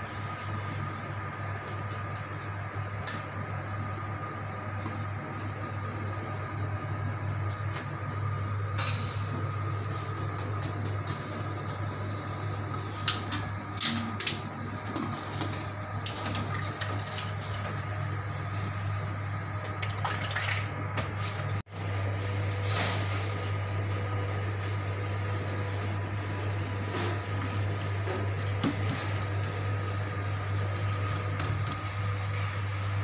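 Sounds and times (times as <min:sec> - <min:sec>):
low machine hum: 0:00.0 - 0:33.0.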